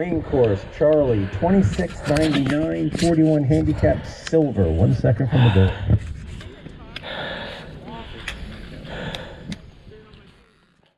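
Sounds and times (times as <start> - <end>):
faint background voices: 0.6 - 10.9.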